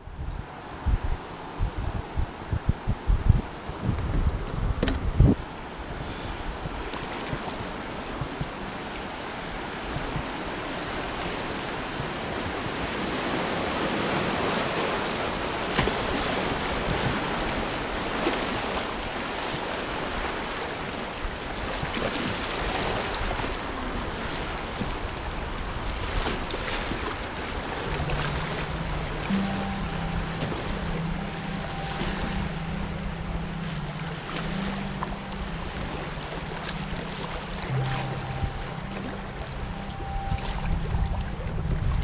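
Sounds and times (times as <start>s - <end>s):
wind buffeting microphone: 0.0s - 42.0s
river current rushing: 5.4s - 42.0s
background music with low notes: 27.9s - 42.0s.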